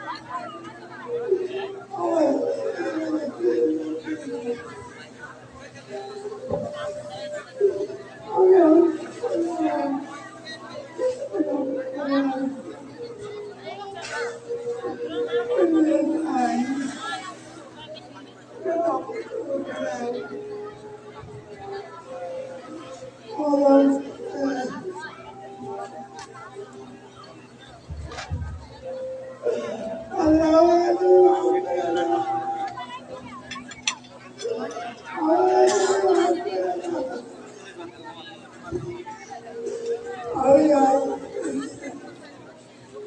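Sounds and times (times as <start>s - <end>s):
background chatter: 0.0s - 43.0s
voices talking: 0.0s - 43.0s.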